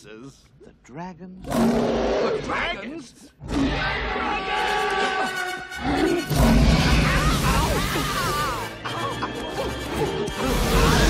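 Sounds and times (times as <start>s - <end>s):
soundtrack music: 4.6s - 11.0s.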